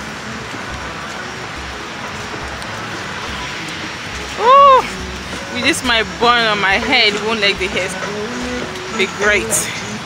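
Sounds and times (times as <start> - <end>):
low microphone rumble: 0.0 - 10.0
steady rain falling: 0.0 - 10.0.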